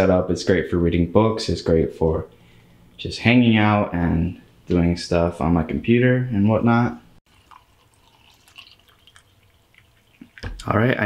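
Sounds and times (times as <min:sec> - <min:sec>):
coffee trickling into a mug: 0:07.3 - 0:10.7
small drips and splashes: 0:07.3 - 0:10.8.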